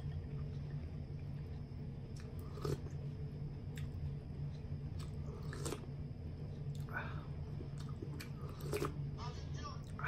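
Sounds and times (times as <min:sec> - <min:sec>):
person chewing: 0:00.0 - 0:09.0
steady low hum: 0:00.0 - 0:10.0.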